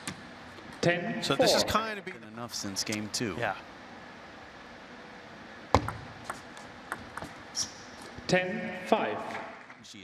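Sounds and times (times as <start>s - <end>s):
ball clicking on racket and table: 5.8s - 7.4s.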